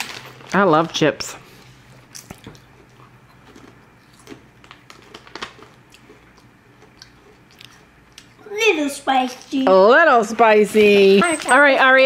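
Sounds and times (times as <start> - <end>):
child chewing chips: 1.5 - 8.5.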